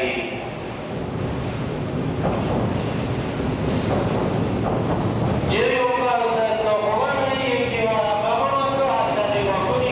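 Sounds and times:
train wheels rumbling on rails: 0:00.0 - 0:09.9
wheels clacking over rail joints: 0:02.2 - 0:05.9.

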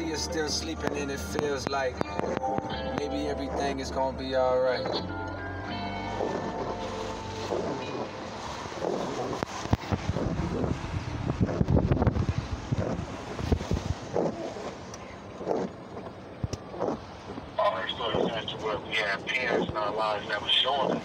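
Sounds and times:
road rumble: 0:00.0 - 0:21.0
wind buffeting microphone: 0:06.1 - 0:21.0.

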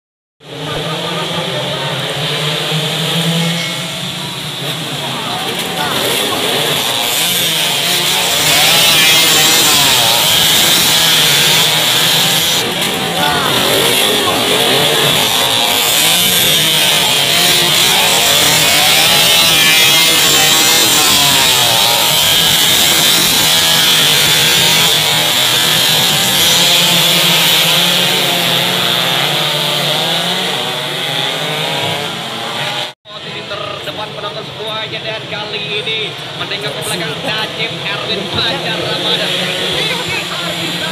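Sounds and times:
motorcycle engines revving: 0:00.4 - 0:40.9.

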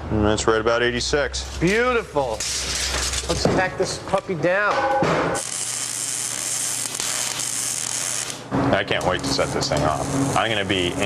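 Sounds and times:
arc welder hissing: 0:05.4 - 0:11.0.

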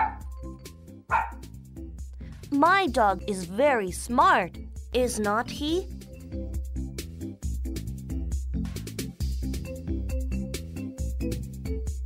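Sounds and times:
dog barking: 0:00.0 - 0:00.3, 0:01.1 - 0:01.4
background music: 0:00.0 - 0:12.0.

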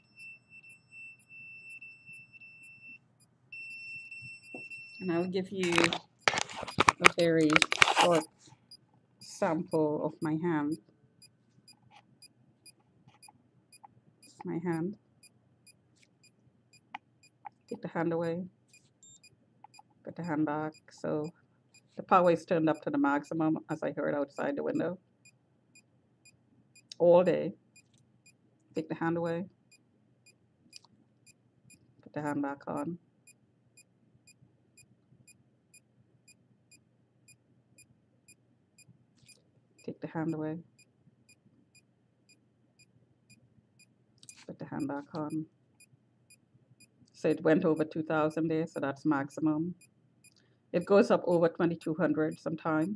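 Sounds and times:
meter beeping: 0:03.6 - 0:08.3, 0:09.2 - 0:10.8.

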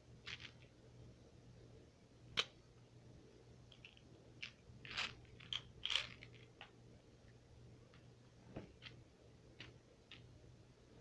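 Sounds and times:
candy package crinkling: 0:03.8 - 0:06.7.

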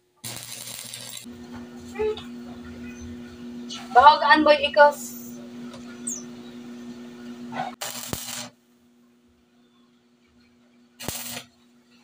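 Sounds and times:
welding arc hiss: 0:00.0 - 0:01.3, 0:07.8 - 0:08.6, 0:11.0 - 0:11.5
welding machine electrical hum: 0:00.0 - 0:08.8, 0:10.9 - 0:12.0.

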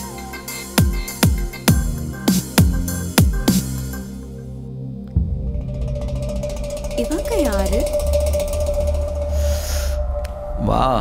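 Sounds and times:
low drone and held tone: 0:04.0 - 0:11.0.

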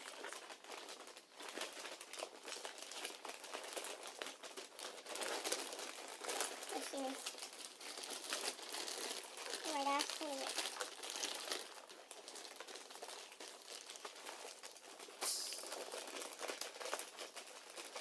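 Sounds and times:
wrapping paper crinkling: 0:00.0 - 0:18.0.

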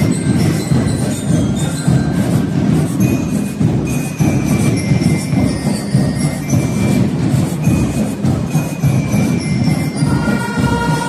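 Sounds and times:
bass and snare drums: 0:00.0 - 0:11.0
bell lyres ringing: 0:00.0 - 0:11.0
marching band playing: 0:00.0 - 0:11.0.

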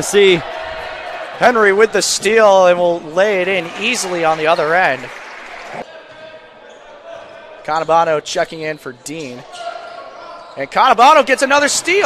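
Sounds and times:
court and crowd ambience: 0:00.0 - 0:12.0.

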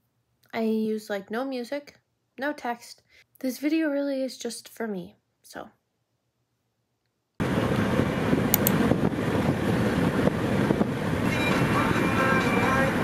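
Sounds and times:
car road and wind noise: 0:07.4 - 0:13.0.

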